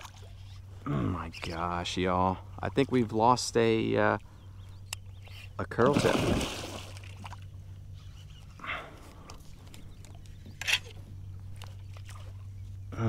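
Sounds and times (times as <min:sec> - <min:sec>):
steady low hum: 0:00.0 - 0:13.0
fish thrashing in water: 0:05.7 - 0:07.4
water splashes: 0:05.7 - 0:07.4.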